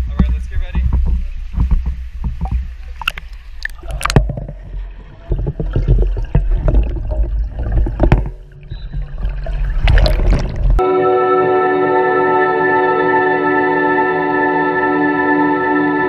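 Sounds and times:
muffled underwater rumble and gurgle: 0:00.0 - 0:10.8
pool water splashing: 0:00.0 - 0:10.8.

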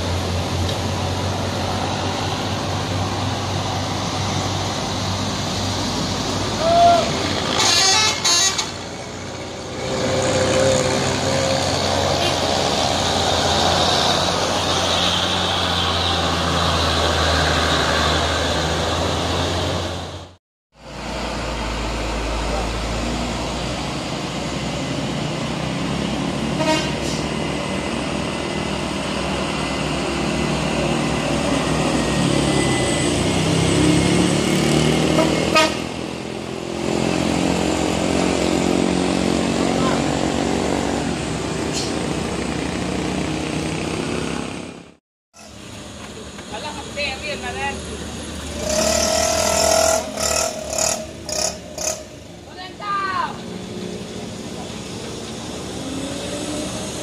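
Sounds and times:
truck and car engines under load: 0:00.0 - 0:57.0
short horn toots: 0:07.6 - 0:08.8, 0:26.6 - 0:27.2.

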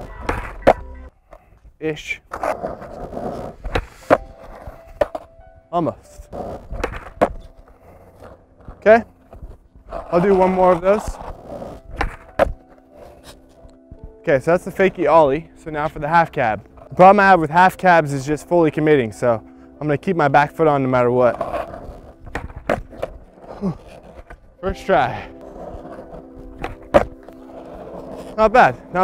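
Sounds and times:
skateboard landing: 0:00.0 - 0:01.5, 0:02.3 - 0:05.3, 0:06.4 - 0:13.4, 0:21.3 - 0:24.4, 0:25.4 - 0:28.4
skateboard tail popping: 0:00.0 - 0:01.6, 0:02.3 - 0:05.3, 0:06.4 - 0:14.0, 0:21.3 - 0:24.4, 0:25.4 - 0:28.4
skateboard wheels rolling on asphalt: 0:00.0 - 0:19.4, 0:20.5 - 0:29.0
skateboard landing slap: 0:11.9 - 0:12.6, 0:22.3 - 0:23.1.

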